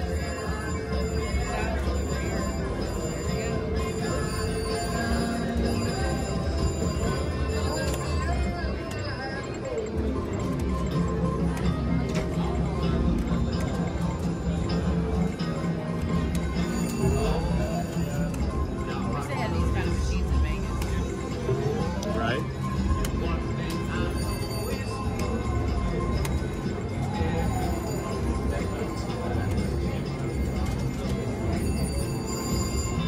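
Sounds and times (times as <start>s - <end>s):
murmur of voices: 0.0s - 33.0s.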